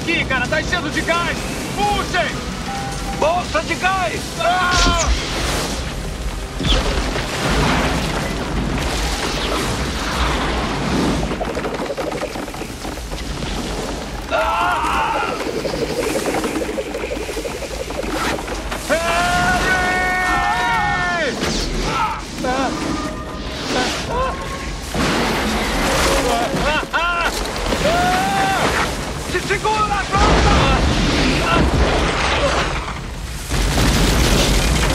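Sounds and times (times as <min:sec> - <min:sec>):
dramatic music: 0:00.0 - 0:27.8
men shouting and crying: 0:26.0 - 0:28.9.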